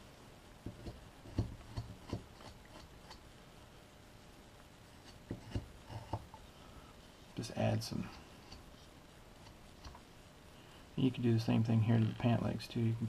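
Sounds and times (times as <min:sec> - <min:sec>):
knife scraping wood: 0:00.7 - 0:03.2, 0:04.9 - 0:06.4.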